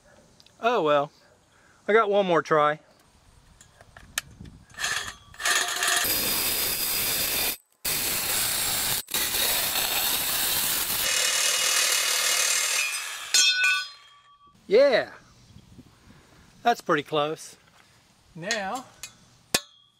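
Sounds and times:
reciprocating saw cutting metal: 0:04.8 - 0:14.1
metal ringing: 0:12.8 - 0:14.6, 0:18.5 - 0:19.9.

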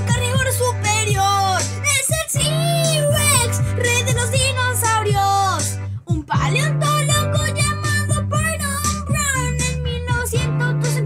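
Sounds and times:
instrumental backing with bass line: 0:00.0 - 0:11.0
person singing children's song: 0:00.0 - 0:11.0.

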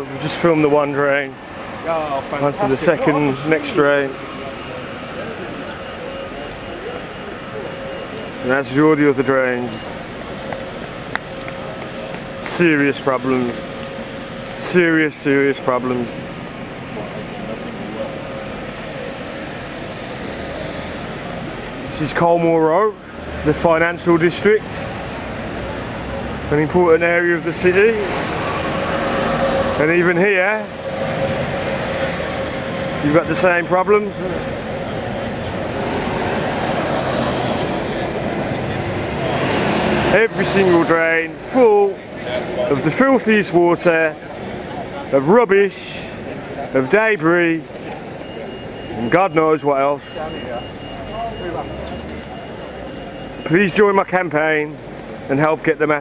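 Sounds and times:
faint indistinct voices: 0:00.0 - 0:14.8
low traffic hum: 0:00.0 - 0:56.0.

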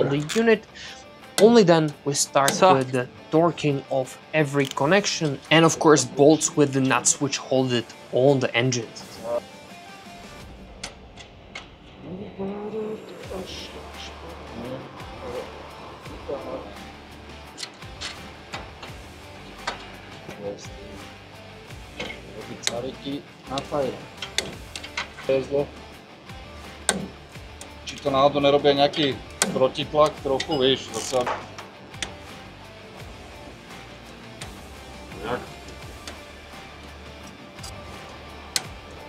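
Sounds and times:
background music with singing: 0:00.0 - 0:39.0
wrenches clicking on metal fittings: 0:04.6 - 0:05.4, 0:28.9 - 0:31.4.

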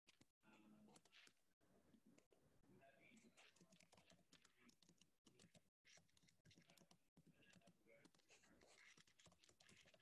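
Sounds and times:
faint typing on a keyboard: 0:00.1 - 0:01.4, 0:03.0 - 0:10.0.

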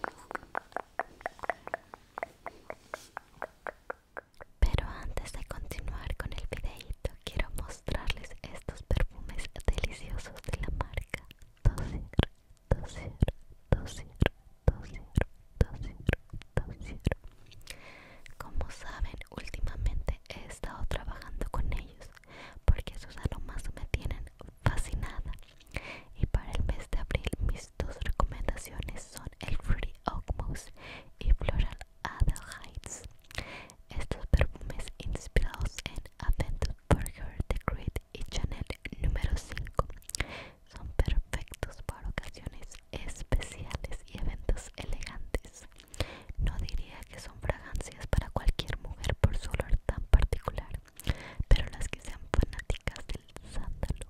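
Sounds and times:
person whispering: 0:00.0 - 0:17.2, 0:18.2 - 0:54.0.

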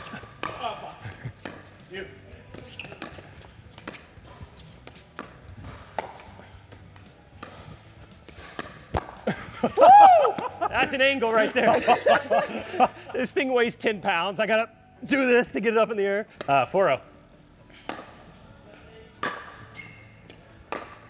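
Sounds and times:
ball bouncing on court: 0:00.0 - 0:01.7, 0:02.5 - 0:09.3, 0:19.2 - 0:21.0
paddles hitting plastic ball: 0:00.0 - 0:01.8, 0:02.6 - 0:09.3, 0:17.8 - 0:18.3, 0:19.2 - 0:21.0.

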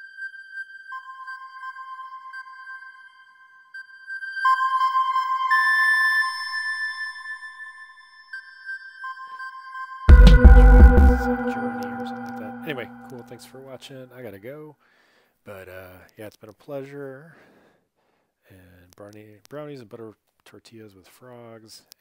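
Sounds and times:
chiptune synth held high notes: 0:10.1 - 0:13.5.

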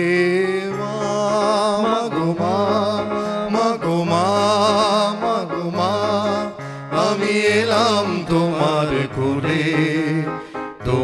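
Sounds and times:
held keyboard notes: 0:00.0 - 0:11.0
man singing wordless melody: 0:00.0 - 0:11.0.

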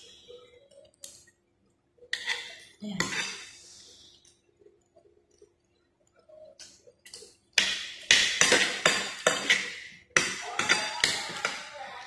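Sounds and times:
tableware clinking on a plate: 0:07.6 - 0:11.8.

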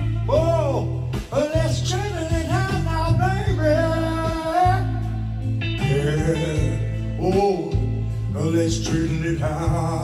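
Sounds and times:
blues guitar: 0:00.0 - 0:10.0
steady bass line: 0:00.0 - 0:10.0.

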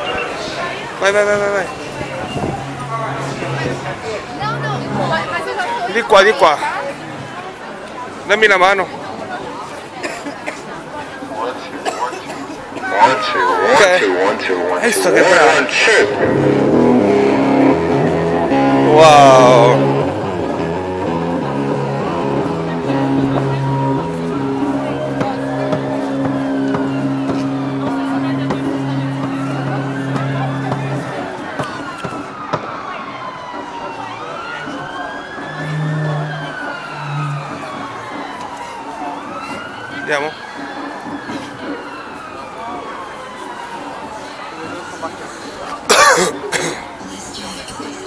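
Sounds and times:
street crowd hubbub: 0:00.0 - 0:48.0
person coughing: 0:10.0 - 0:10.6, 0:45.9 - 0:46.8.

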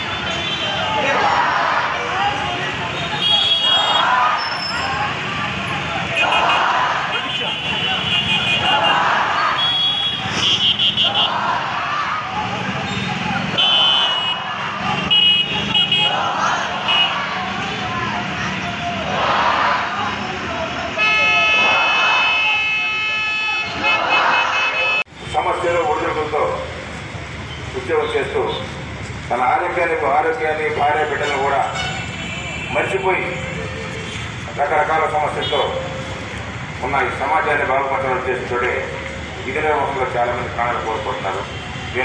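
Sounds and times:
crowd voices: 0:00.0 - 0:42.0
traffic noise: 0:00.0 - 0:42.0
vehicle horn long blast: 0:03.0 - 0:04.0, 0:09.6 - 0:11.4, 0:13.6 - 0:14.4, 0:15.1 - 0:16.1, 0:21.0 - 0:25.1, 0:31.2 - 0:32.8.

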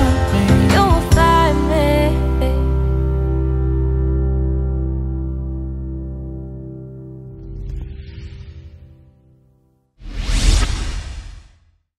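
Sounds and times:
whoosh: 0:07.4 - 0:09.0, 0:10.0 - 0:11.8.

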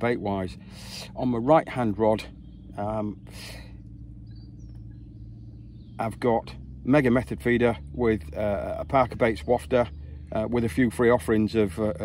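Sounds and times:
distant bird chirps: 0:00.0 - 0:12.0
low background hum: 0:00.0 - 0:12.0.

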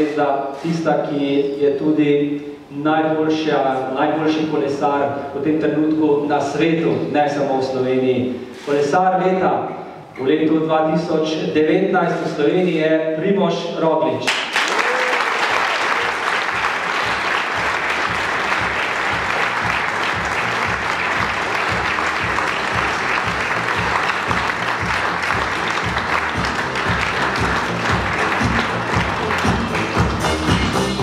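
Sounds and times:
audience applauding: 0:14.3 - 0:31.0
music with pulsing bass beat: 0:16.6 - 0:31.0.

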